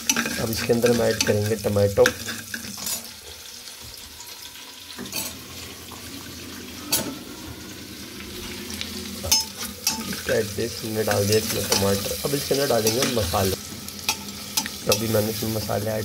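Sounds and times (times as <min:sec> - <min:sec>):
onions sizzling in hot oil: 0:00.0 - 0:16.0.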